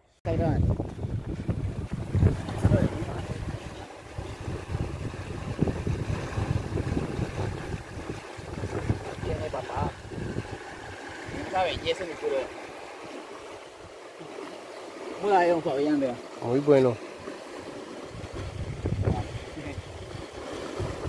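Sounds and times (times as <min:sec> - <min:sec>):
wind buffeting microphone: 0:00.3 - 0:14.1, 0:16.5 - 0:21.0.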